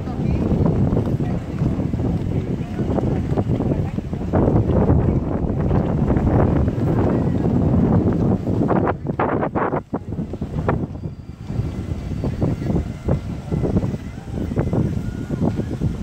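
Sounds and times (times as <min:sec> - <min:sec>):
wind on microphone: 0:00.0 - 0:16.0.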